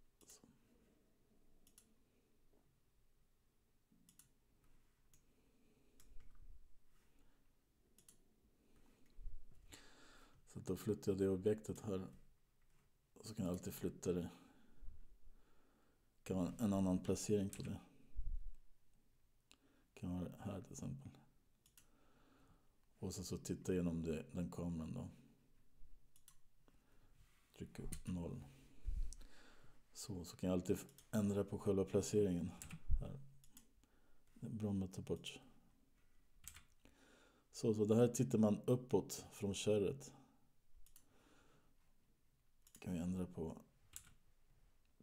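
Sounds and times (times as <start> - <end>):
computer mouse clicks: 1.6 - 2.0, 4.0 - 4.4, 7.9 - 8.2, 21.6 - 21.9, 26.1 - 26.4, 33.4 - 33.7, 36.4 - 36.8, 40.8 - 41.1, 42.6 - 42.9, 43.9 - 44.2.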